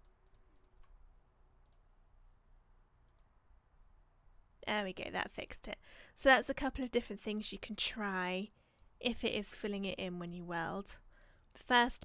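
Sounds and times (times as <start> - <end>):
faint computer mouse clicks: 0.0 - 1.0, 1.6 - 1.9, 3.0 - 3.3.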